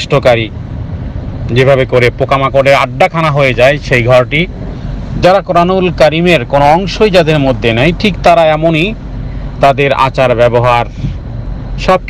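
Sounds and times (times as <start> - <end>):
low background rumble: 0.0 - 12.0
man lecturing: 1.5 - 4.5, 5.1 - 9.0, 9.6 - 11.1.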